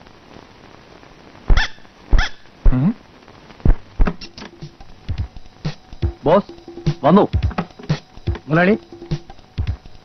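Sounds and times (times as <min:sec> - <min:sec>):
dog barking: 0:01.5 - 0:02.4.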